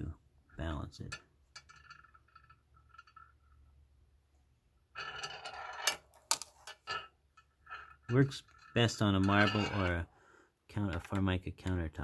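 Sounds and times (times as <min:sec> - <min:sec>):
balls rolling scrape on stone: 0:01.6 - 0:03.7, 0:04.9 - 0:10.1
metal magnet balls clicking together: 0:05.0 - 0:09.9.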